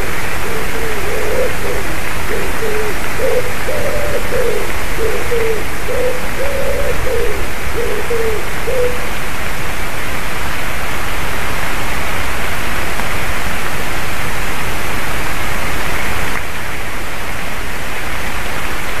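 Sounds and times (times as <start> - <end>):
loud outdoor hiss: 0.0 - 19.0.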